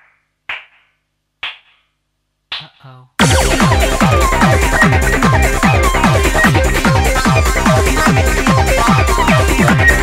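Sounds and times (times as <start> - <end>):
electronic percussion hits: 2.5 - 10.0.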